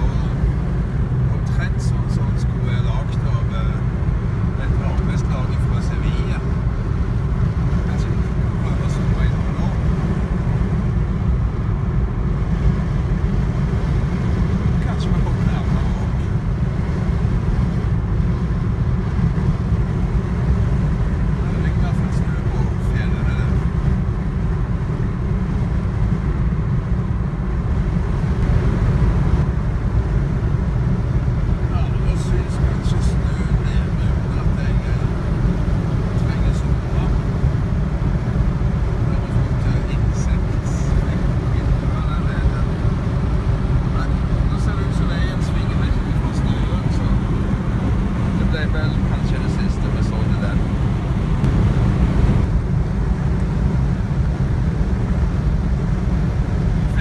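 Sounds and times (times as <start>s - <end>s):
car interior road and engine rumble: 0.0s - 57.0s.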